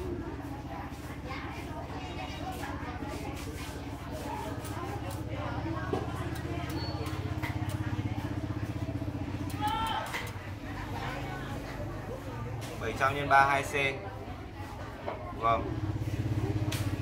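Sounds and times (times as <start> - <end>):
faint voices: 0.0 - 17.0.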